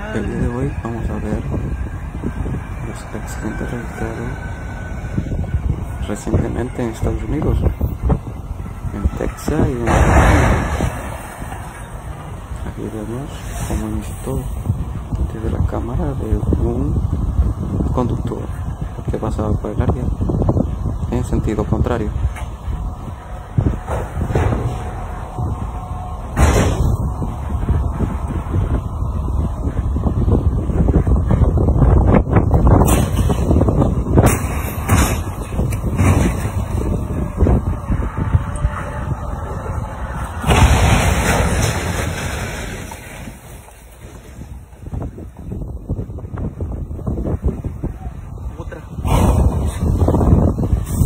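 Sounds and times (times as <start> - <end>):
car road noise rumble: 0.0 - 51.0
sharp thumps: 26.3 - 28.1.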